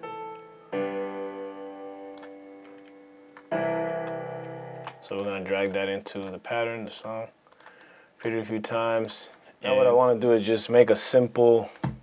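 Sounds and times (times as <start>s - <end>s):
piano chords: 0.0s - 5.9s.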